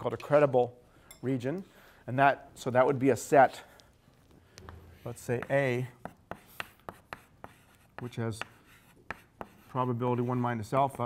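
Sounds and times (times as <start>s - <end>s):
chalk tapping and scraping: 4.6s - 11.0s.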